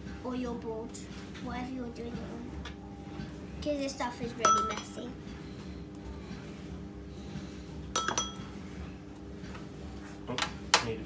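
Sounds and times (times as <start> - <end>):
metal spoons clinking on bowl: 8.0 - 8.4.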